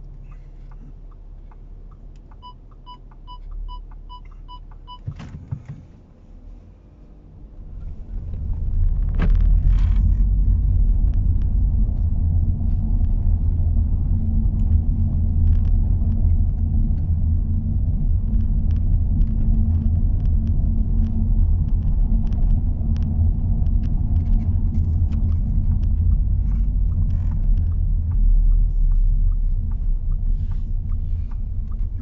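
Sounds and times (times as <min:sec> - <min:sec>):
car interior road rumble: 0:00.0 - 0:32.0.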